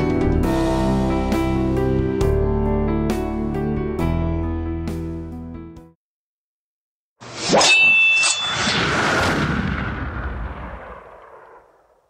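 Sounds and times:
rumbling boom sound effect: 8.6 - 12.0.

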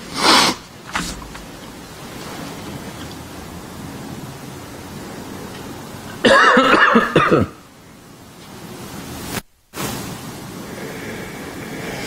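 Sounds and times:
microphone room hiss: 0.0 - 12.0.

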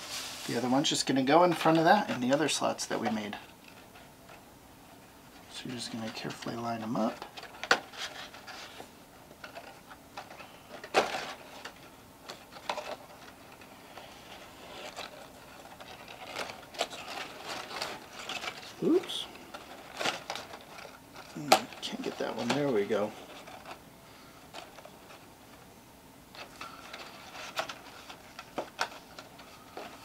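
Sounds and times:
cardstock paper rustling: 5.4 - 23.8.

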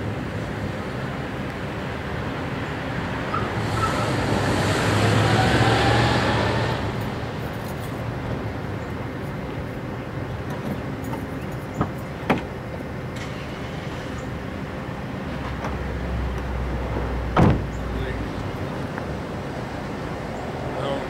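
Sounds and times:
traffic and engine rumble: 0.0 - 21.0.

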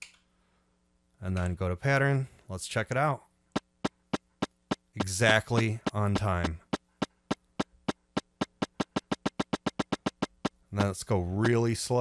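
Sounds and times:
electronic click track: 3.8 - 6.8.

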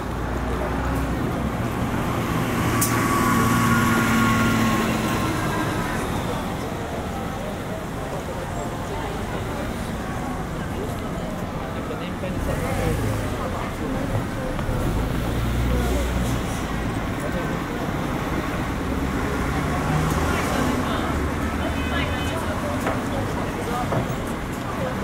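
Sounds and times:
bus engine running: 0.0 - 25.0
street traffic: 0.0 - 25.0
voices of passers-by: 0.0 - 25.0.

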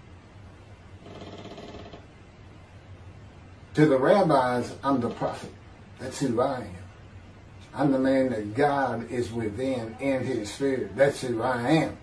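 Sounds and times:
faint buzzing tone: 0.0 - 12.0
low background hum: 0.0 - 12.0.

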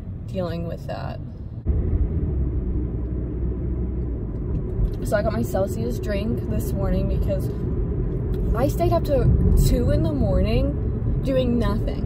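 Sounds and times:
car engine and road noise: 0.0 - 12.0.

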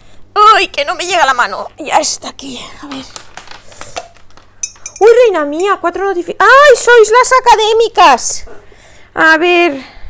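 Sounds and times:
small hard objects clinking: 2.8 - 5.2.

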